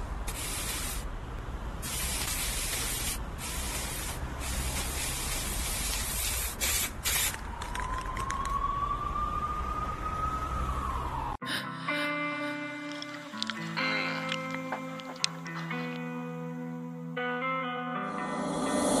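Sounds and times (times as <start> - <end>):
spray paint can hissing: 0.3 - 1.1, 1.8 - 7.9.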